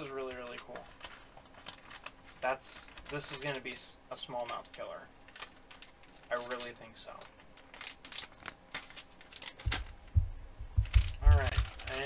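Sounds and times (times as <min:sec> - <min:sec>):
plastic package crinkling: 0:00.0 - 0:12.0
dull low thumps: 0:09.7 - 0:11.8.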